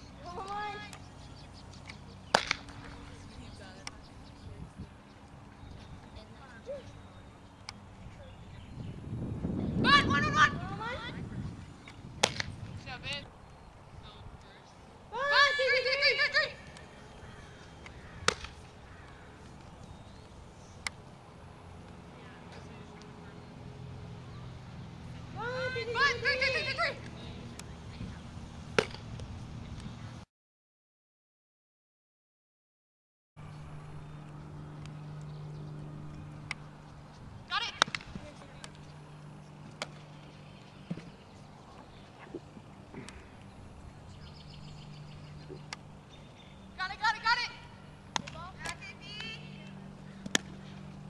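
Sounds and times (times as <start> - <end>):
low outdoor rumble: 0.0 - 30.2, 33.4 - 51.0
softball smacking into leather glove: 2.3 - 2.6, 12.2 - 12.5, 18.2 - 18.6, 28.8 - 29.0.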